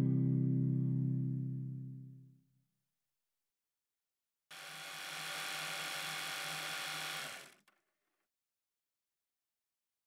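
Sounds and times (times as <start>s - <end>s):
small motor whirring: 4.5s - 8.0s.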